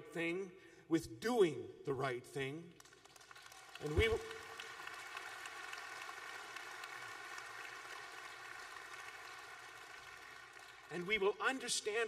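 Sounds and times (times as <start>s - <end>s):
audience applause: 3.0s - 10.9s.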